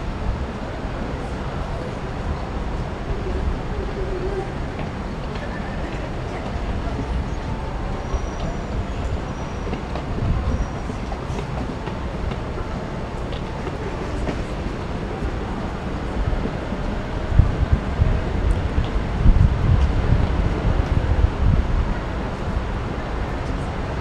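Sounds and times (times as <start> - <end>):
city street traffic rumble: 0.0 - 24.0
wind buffeting microphone: 0.0 - 24.0.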